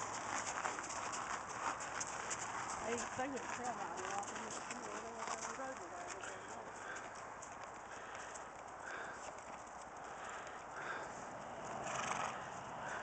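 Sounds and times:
horse hooves clopping on dirt: 0.0s - 13.0s.

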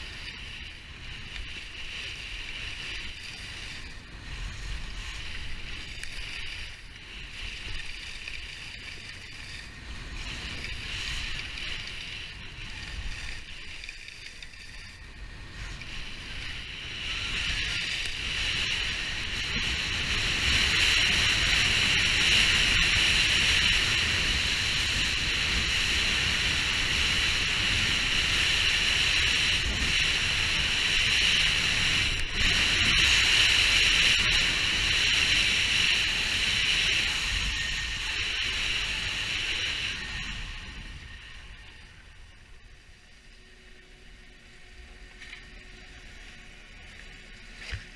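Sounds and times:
skis hissing over snow: 0.0s - 47.9s.

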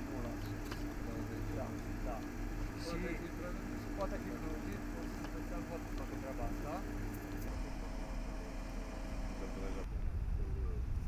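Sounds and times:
engine idling: 0.0s - 9.9s.

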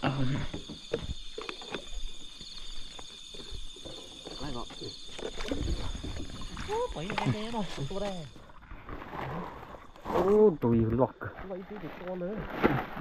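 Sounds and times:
crickets trilling: 0.0s - 13.0s.

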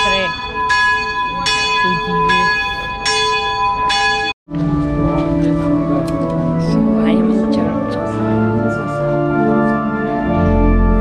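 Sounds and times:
church bells ringing: 0.0s - 11.0s
organ music: 4.5s - 11.0s.

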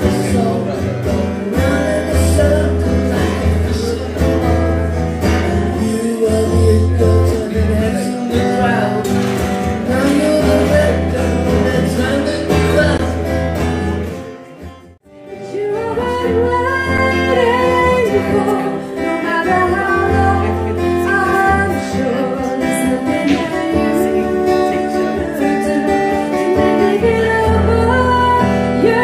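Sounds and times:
man singing with acoustic guitar: 0.0s - 29.0s
woman singing with acoustic guitar: 0.0s - 29.0s.

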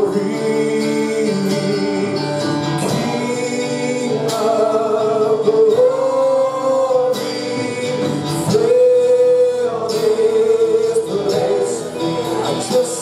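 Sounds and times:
voices singing worship song: 0.0s - 13.0s.

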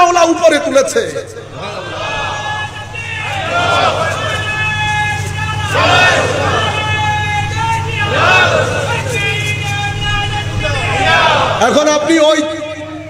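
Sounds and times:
low hum: 1.2s - 13.0s.

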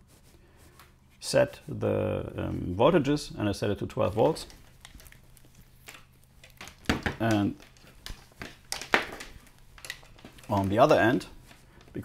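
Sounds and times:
cable handling: 4.0s - 12.0s.

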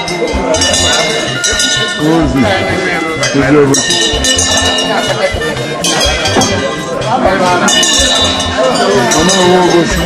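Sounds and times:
metal bell ringing: 0.0s - 10.0s
steady drum beat: 0.1s - 10.0s.

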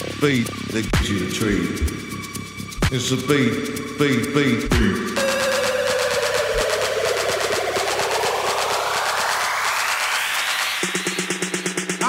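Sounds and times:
rapid repeated hits: 4.1s - 12.0s
rising noise sweep: 5.2s - 11.9s.

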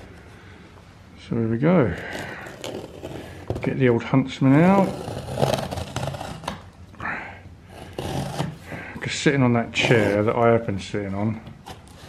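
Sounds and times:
knife slitting packing tape: 2.0s - 3.4s, 4.7s - 6.7s, 7.8s - 8.7s.

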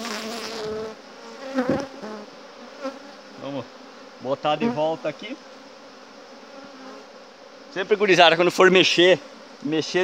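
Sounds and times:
bees buzzing: 0.0s - 10.0s.

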